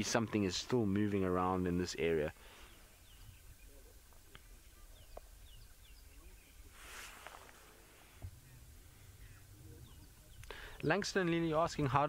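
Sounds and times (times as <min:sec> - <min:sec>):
faint clicks: 0:04.1 - 0:04.5, 0:10.4 - 0:11.0
brief rustle: 0:06.7 - 0:08.4.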